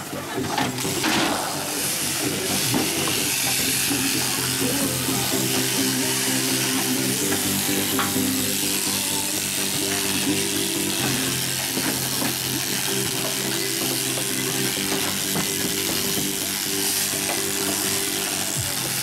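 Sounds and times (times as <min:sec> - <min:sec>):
background music: 0:00.0 - 0:19.0
electric shears buzzing: 0:00.0 - 0:19.0.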